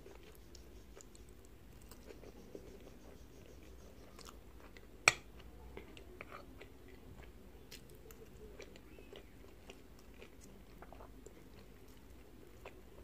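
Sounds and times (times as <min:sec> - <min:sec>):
chewing soft pasta: 0:00.0 - 0:13.0.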